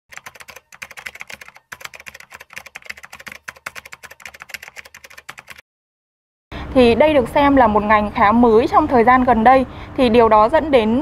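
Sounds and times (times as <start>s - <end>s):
computer keyboard typing: 0.1s - 5.6s.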